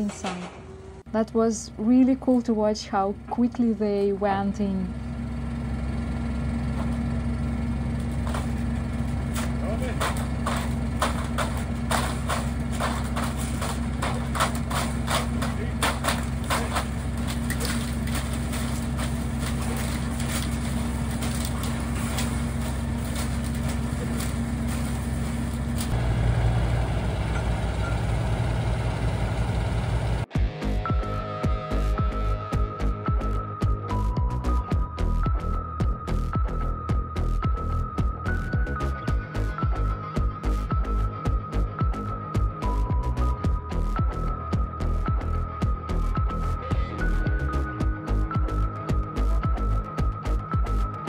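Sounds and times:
metallic clanks of pipes: 0.0 - 0.8
drilling rig engine running: 0.0 - 30.3
music: 9.6 - 24.3, 30.3 - 51.0.

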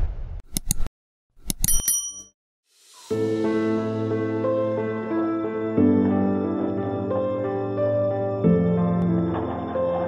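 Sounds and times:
bright bell-like ding: 1.7 - 2.3.

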